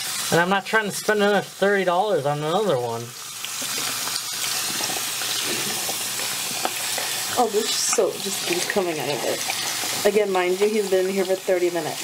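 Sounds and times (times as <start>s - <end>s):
faucet running: 0.0s - 12.0s
hands washing cloth: 7.0s - 12.0s.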